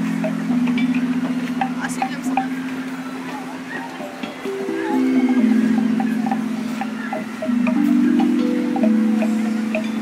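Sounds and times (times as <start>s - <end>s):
metallophone struck with mallets: 0.0s - 10.0s.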